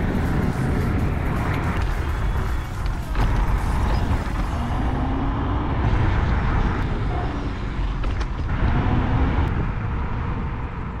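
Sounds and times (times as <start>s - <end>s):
wind rumble and road noise: 0.0s - 11.0s.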